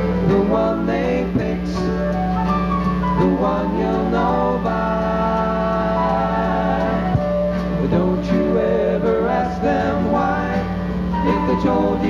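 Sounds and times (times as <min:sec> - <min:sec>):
person singing: 0:00.0 - 0:02.4, 0:03.2 - 0:12.0
guitar: 0:00.0 - 0:12.0
live band music: 0:00.0 - 0:12.0
wavering melodic lead line: 0:00.0 - 0:12.0.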